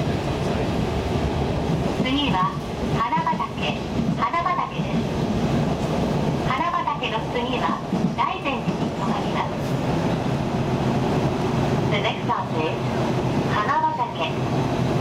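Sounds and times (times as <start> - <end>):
train running noise: 0.0 - 15.0.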